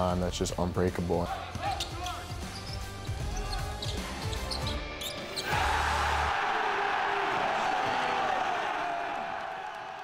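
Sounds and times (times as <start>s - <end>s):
sneaker squeaks: 1.6s - 5.5s
crowd cheering: 5.4s - 10.0s.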